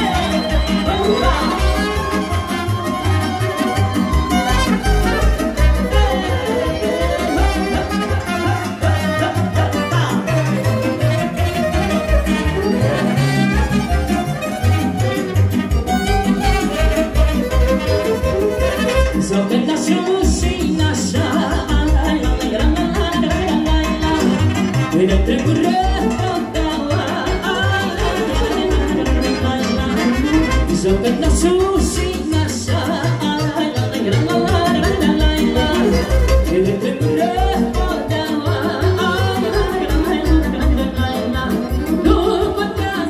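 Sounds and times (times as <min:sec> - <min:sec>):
fiddle melody: 0:00.0 - 0:19.5, 0:33.4 - 0:43.0
violin: 0:00.0 - 0:19.8, 0:23.0 - 0:43.0
accordion: 0:00.0 - 0:43.0
band playing dance music: 0:00.0 - 0:43.0.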